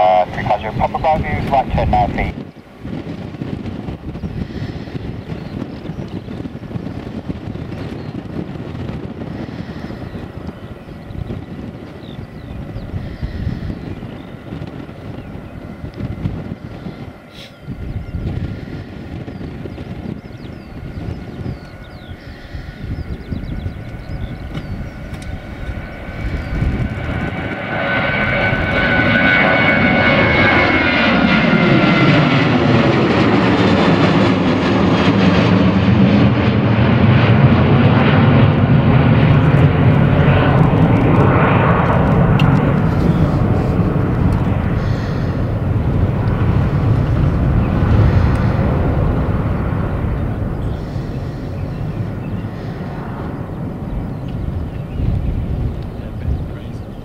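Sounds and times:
jet engines roaring: 0:00.0 - 0:57.0.

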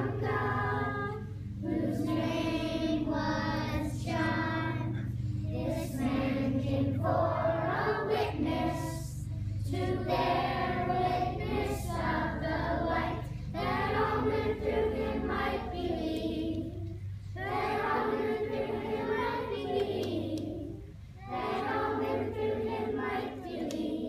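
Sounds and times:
children's choir singing: 0:00.0 - 0:24.0
low steady hum: 0:00.0 - 0:24.0.

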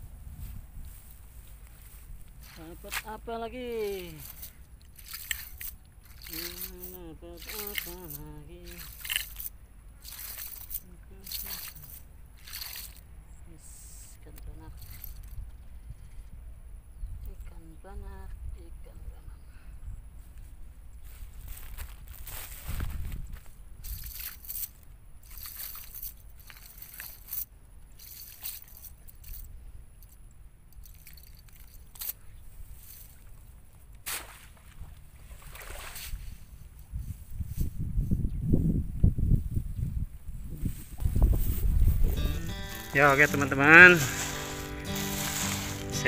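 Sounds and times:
wet net rustling on mud: 0:01.5 - 0:13.0, 0:23.8 - 0:29.4, 0:30.8 - 0:37.7, 0:40.8 - 0:46.0.

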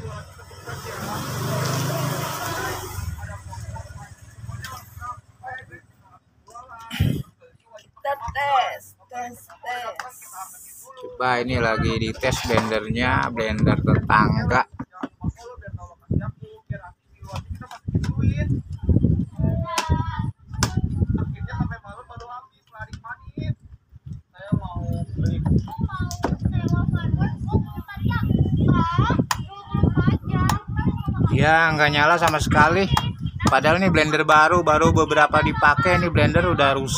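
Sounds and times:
quiet voices: 0:00.0 - 0:13.4.

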